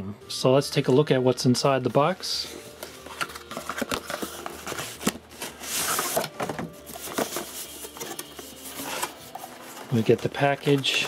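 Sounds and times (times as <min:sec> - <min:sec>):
cardboard box being unpacked: 0:02.5 - 0:11.0
plastic packaging rustling: 0:02.5 - 0:11.0.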